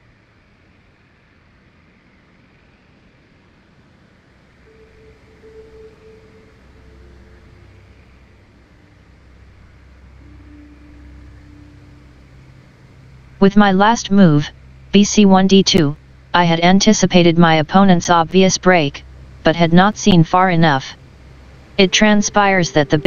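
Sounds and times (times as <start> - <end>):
faint background hiss: 0.0 - 23.0
low hum: 4.6 - 23.0.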